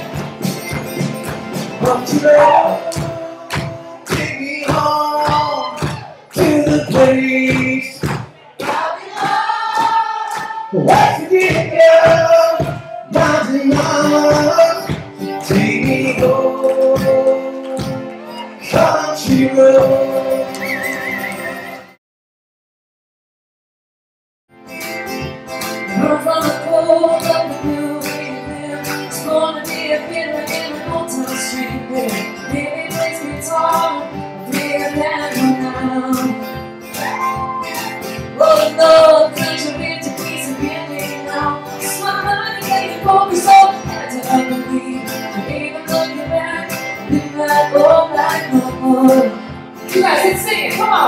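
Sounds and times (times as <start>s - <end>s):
percussive beat: 0.0s - 18.1s
acoustic guitars: 0.0s - 22.0s, 24.6s - 51.0s
person singing: 1.8s - 8.0s, 8.7s - 21.8s, 25.9s - 51.0s.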